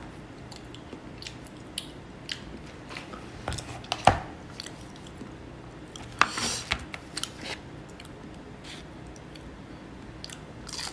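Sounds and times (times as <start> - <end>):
person chewing: 0.4 - 3.8, 4.5 - 6.3, 10.2 - 10.9.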